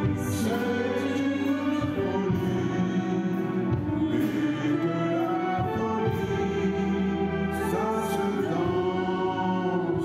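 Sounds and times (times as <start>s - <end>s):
orchestral music with held chords: 0.0s - 10.0s.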